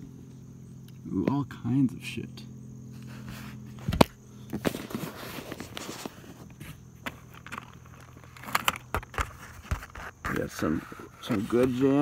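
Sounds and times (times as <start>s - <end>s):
plastic cases and wires clattering: 3.8s - 12.0s.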